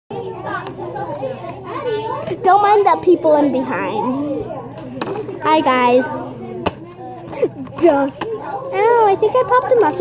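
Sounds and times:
children chattering: 0.1s - 10.0s.

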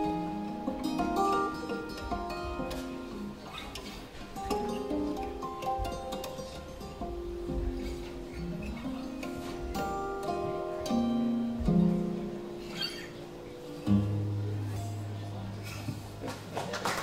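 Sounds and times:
acoustic guitars playing: 0.0s - 16.6s.

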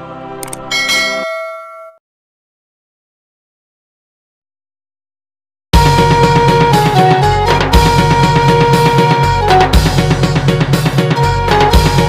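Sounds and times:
jingle music: 0.4s - 2.0s
bell-like chime: 0.7s - 2.0s.

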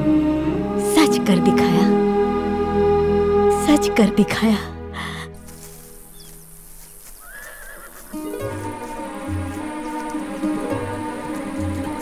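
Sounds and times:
faint wavering animal call: 6.0s - 12.0s.

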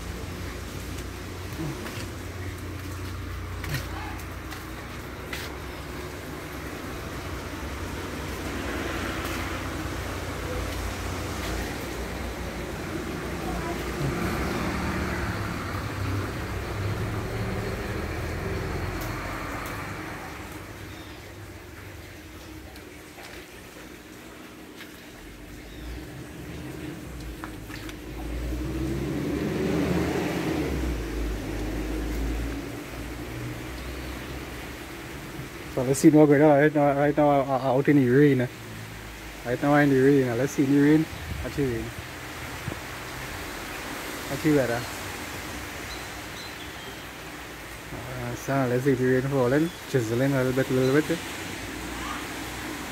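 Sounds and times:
low traffic rumble: 0.0s - 52.9s
vehicles passing: 0.0s - 52.9s.

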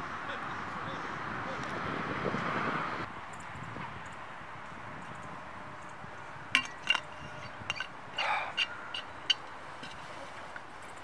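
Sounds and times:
metal water bottle clinking: 6.6s - 10.0s.

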